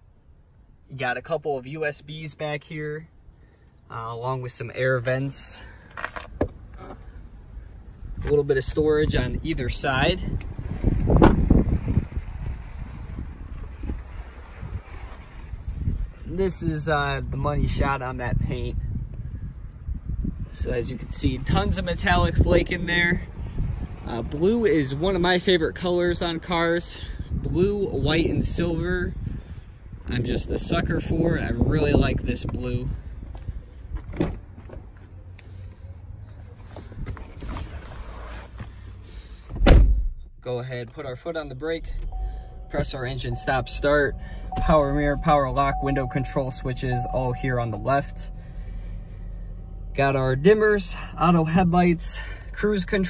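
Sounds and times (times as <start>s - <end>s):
wind buffeting microphone: 8.0s - 16.2s, 18.2s - 24.4s
car door shutting thud: 11.1s - 11.6s, 39.5s - 40.2s.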